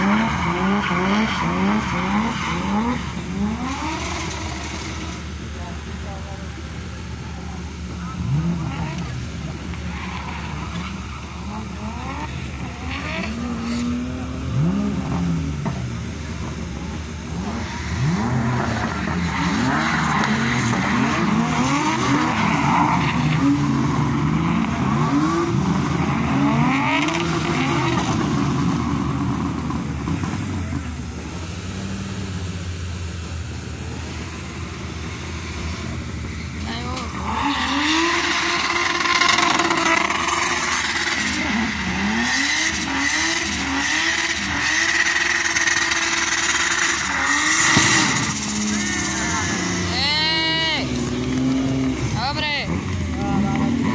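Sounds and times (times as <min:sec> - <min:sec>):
tyres spinning and squealing: 0:00.0 - 0:14.0, 0:16.4 - 0:31.5, 0:33.8 - 0:53.9
car engine revving: 0:00.0 - 0:53.9.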